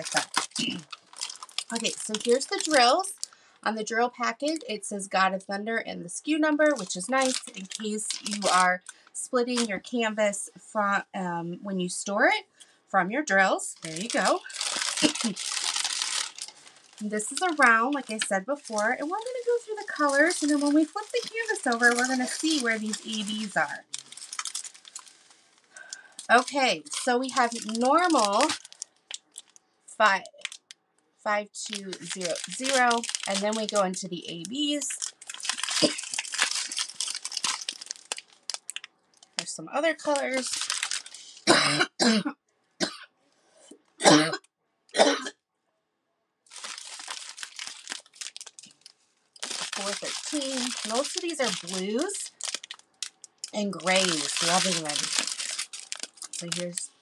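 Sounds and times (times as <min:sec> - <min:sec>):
plastic packets crinkling and clicking: 0:00.0 - 0:03.4, 0:04.4 - 0:04.7, 0:06.4 - 0:09.8, 0:13.8 - 0:29.6, 0:30.2 - 0:30.8, 0:31.6 - 0:41.5, 0:46.5 - 0:57.0
woman coughing: 0:35.8 - 0:36.0, 0:41.4 - 0:43.0, 0:44.0 - 0:44.4, 0:45.0 - 0:45.4.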